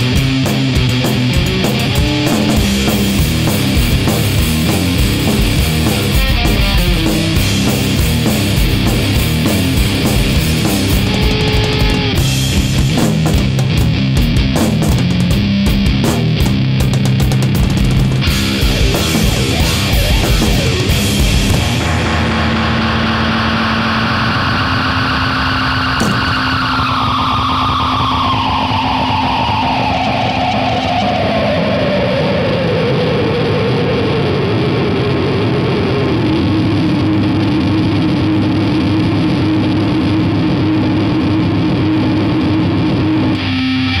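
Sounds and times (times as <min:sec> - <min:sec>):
bass hum: 0:00.0 - 0:44.0
distorted electric guitar drone: 0:00.0 - 0:44.0
sharp hit: 0:00.8 - 0:13.6, 0:18.1 - 0:29.9.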